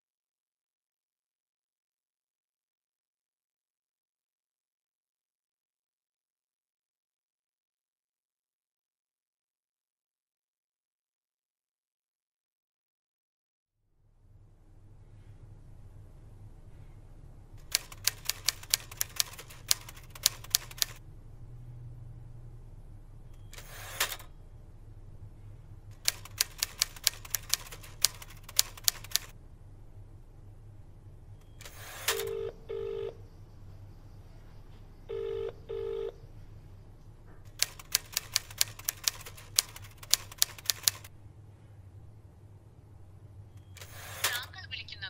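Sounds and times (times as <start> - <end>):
typewriter keys clacking: 17.6 - 21.0, 26.0 - 29.3, 37.5 - 41.1
telephone ringing tone beeps: 32.1 - 33.2, 35.1 - 36.2.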